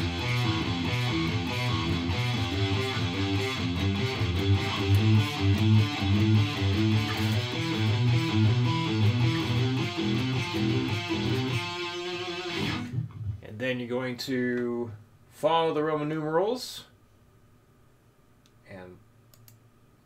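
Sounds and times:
electric guitar arpeggios: 0.0 - 13.1.

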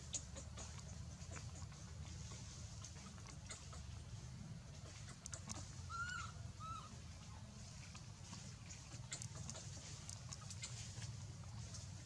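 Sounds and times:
low steady hum: 0.0 - 12.0
dry leaves rustling: 4.8 - 12.0
baby monkey squeaking: 5.0 - 7.0.

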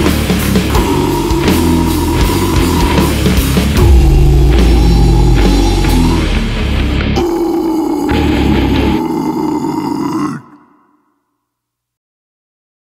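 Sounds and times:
drums: 0.0 - 9.7
distorted electric guitars: 0.0 - 10.5.

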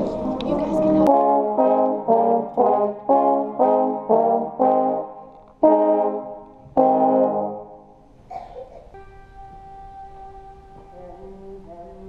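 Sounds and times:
trombones playing chords: 0.0 - 11.6.

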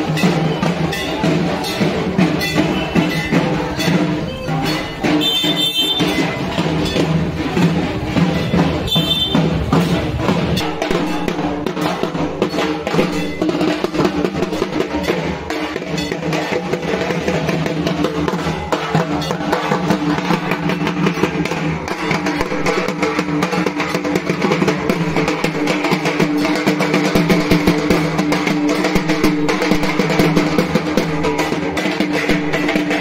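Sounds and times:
barrel drums fast rhythm: 0.0 - 33.0.

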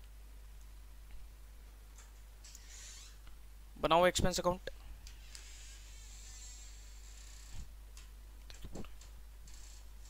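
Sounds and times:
low electrical hum: 0.0 - 10.0
thin high hiss: 2.4 - 3.2.

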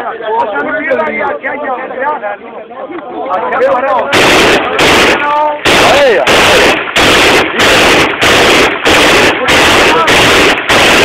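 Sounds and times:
automatic rifle fire: 4.1 - 11.0.

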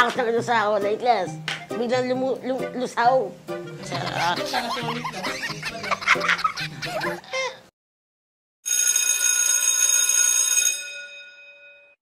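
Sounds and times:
bell-like ringing: 8.7 - 12.0.

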